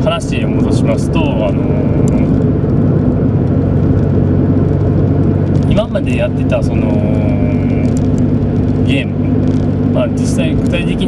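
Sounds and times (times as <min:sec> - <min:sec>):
car engine hum inside car: 0:00.0 - 0:11.0.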